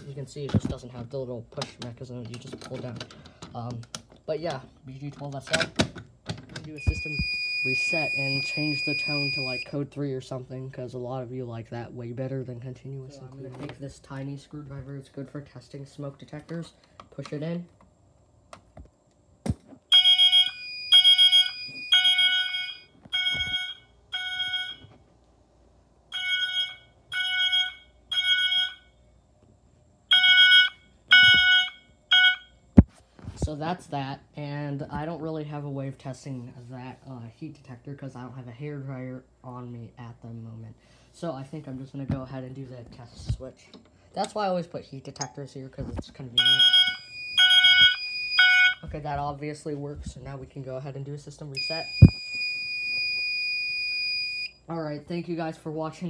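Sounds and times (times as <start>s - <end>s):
fire alarm horn blasts: 6.8s - 9.7s, 19.9s - 24.9s, 26.1s - 29.0s, 30.1s - 32.6s, 46.4s - 48.9s
steady high tone: 6.8s - 9.8s.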